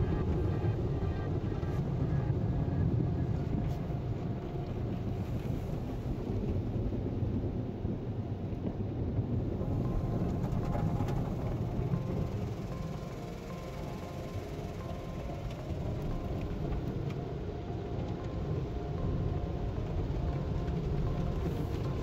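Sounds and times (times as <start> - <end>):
muffled car wash rumble: 0.0 - 22.0.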